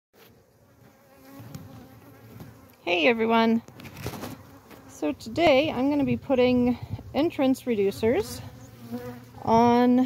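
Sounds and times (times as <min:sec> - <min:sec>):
bees buzzing: 0:00.2 - 0:10.0
single bee humming close: 0:00.2 - 0:10.0.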